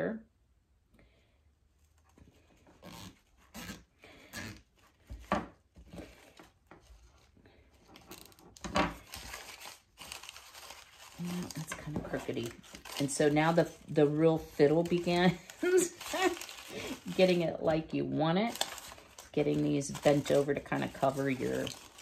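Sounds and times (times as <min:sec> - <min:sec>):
artificial leaves rustling and crinkling: 0:05.1 - 0:22.0.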